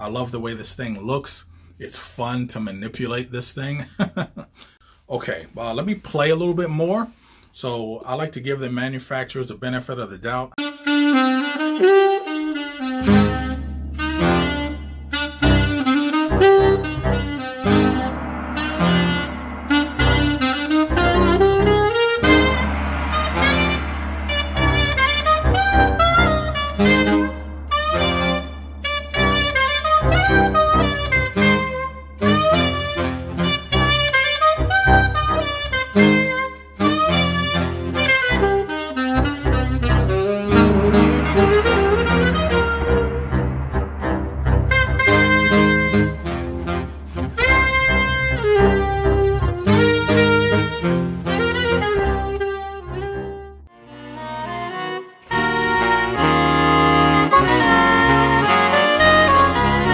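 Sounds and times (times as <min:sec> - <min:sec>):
alto saxophone jazz melody: 0:10.6 - 0:18.2, 0:46.8 - 0:59.9
alto saxophone quick notes: 0:10.6 - 0:18.5
bass line: 0:13.0 - 0:38.1, 0:39.2 - 0:53.6
low drum hits: 0:13.5 - 0:32.3, 0:40.3 - 0:49.6.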